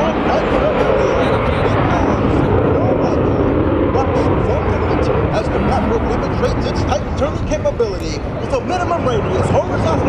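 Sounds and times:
jet aircraft noise: 0.0 - 10.0
people's voices: 0.0 - 10.0.

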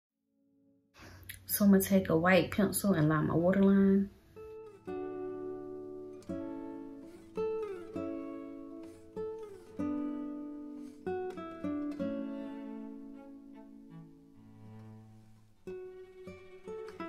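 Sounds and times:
plucked guitar-like notes: 4.4 - 17.0.

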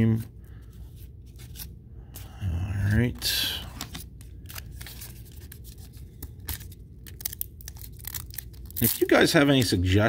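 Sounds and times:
foil wrapper crinkling: 4.4 - 9.4.

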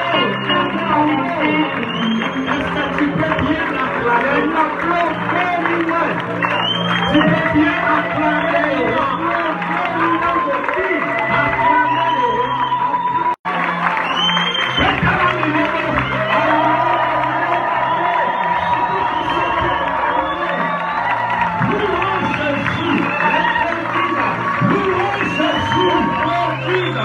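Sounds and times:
keyboard and bass: 0.0 - 27.0.

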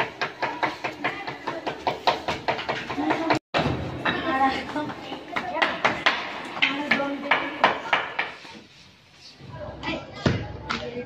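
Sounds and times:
sharp wooden knocks and clacks: 0.0 - 8.4.

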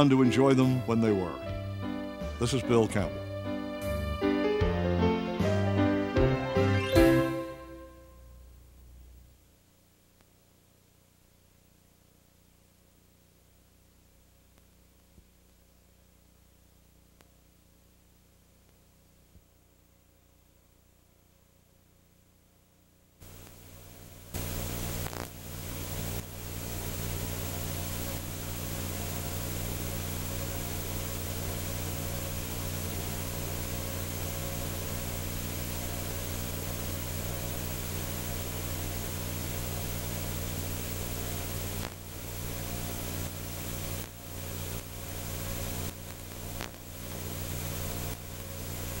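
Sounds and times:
low electrical hum: 0.0 - 49.0
tape hiss: 0.0 - 49.0.

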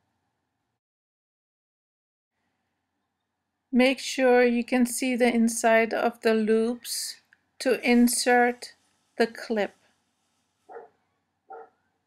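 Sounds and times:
faint dog barks: 10.7 - 11.9.

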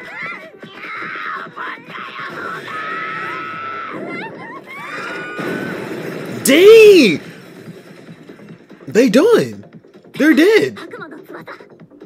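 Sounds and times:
soundtrack music: 3.9 - 12.0
person shouting: 6.5 - 7.2.

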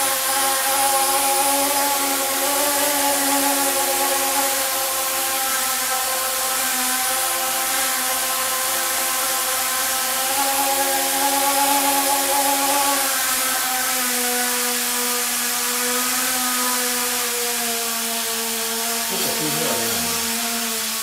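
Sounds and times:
electric propeller motors whining: 0.0 - 21.0.

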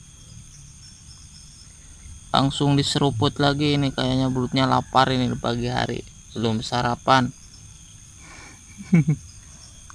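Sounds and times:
high-pitched insect chirring: 0.0 - 9.9.

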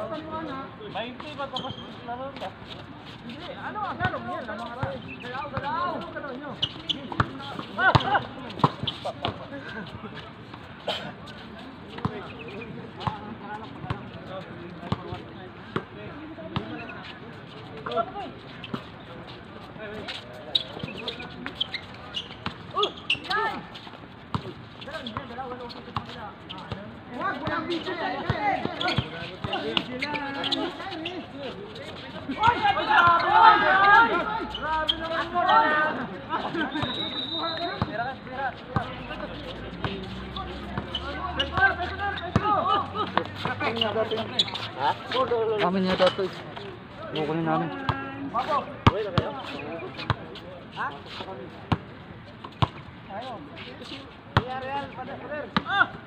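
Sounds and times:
players calling and shouting: 0.0 - 56.0.

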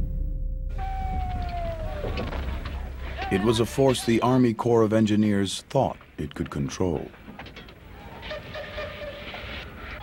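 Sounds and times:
distant steam whistle: 0.7 - 2.2.

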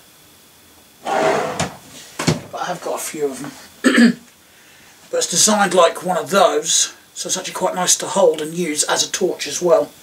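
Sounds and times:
drawer sliding with scraping rub: 1.0 - 2.1
drawer knock: 1.1 - 2.5.

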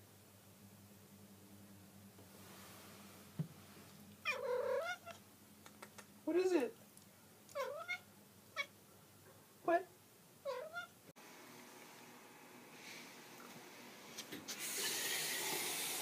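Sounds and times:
cat meowing: 4.2 - 5.2, 7.5 - 8.7, 10.4 - 11.0.

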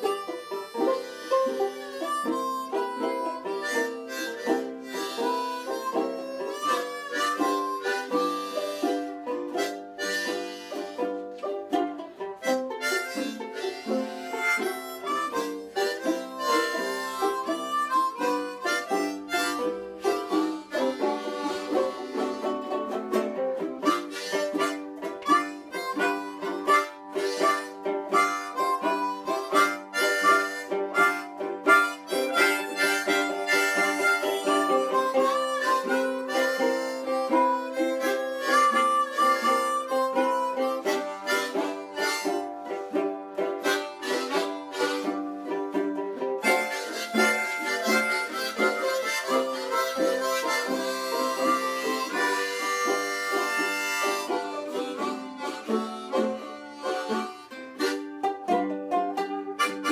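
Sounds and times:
harmonicas playing blues: 0.0 - 59.9
ukulele strumming: 0.0 - 59.9.

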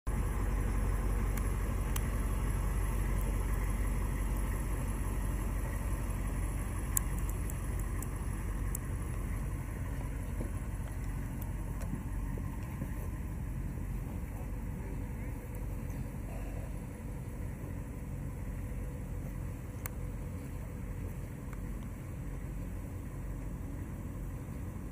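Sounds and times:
vehicle engine idling: 0.1 - 24.9.

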